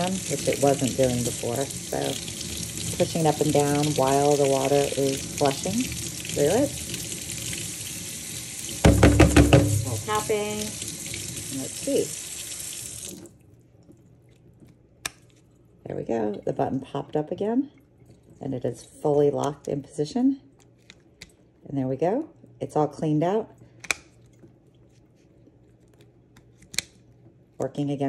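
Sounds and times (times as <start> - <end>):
faint water drips: 0.0 - 8.8, 9.8 - 21.6
faucet water running into sink: 0.0 - 13.4.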